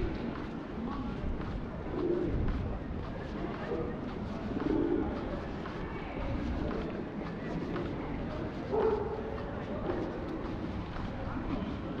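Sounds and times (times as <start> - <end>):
pedestrian street hum: 0.0 - 12.0
pigeons cooing: 4.6 - 5.2.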